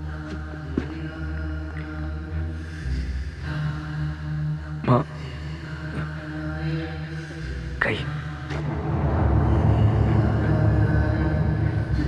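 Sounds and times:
chanted verse over music: 0:00.0 - 0:12.0
low rumble: 0:08.3 - 0:12.0.

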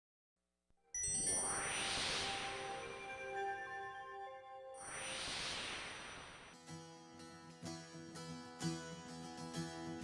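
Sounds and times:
ringing chime: 0:00.9 - 0:04.4
rising whoosh: 0:01.1 - 0:03.4, 0:04.8 - 0:06.6.

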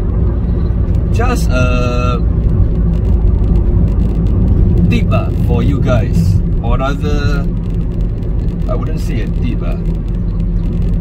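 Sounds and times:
road and engine noise in a van: 0:00.0 - 0:11.0.

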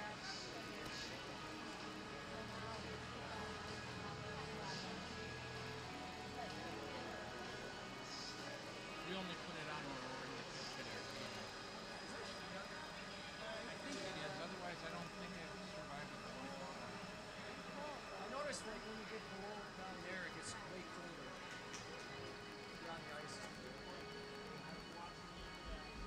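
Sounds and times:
ice resurfacer engine running: 0:00.0 - 0:26.0.

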